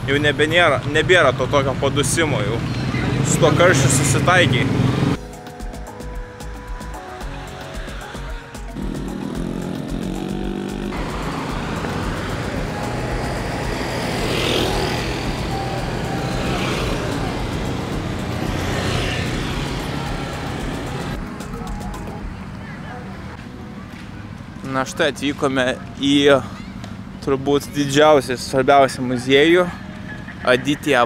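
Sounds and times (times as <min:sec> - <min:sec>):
vehicles passing close by: 0:00.0 - 0:05.2, 0:07.0 - 0:31.0
busy street traffic: 0:00.0 - 0:31.0
background music with a beat: 0:05.2 - 0:22.6.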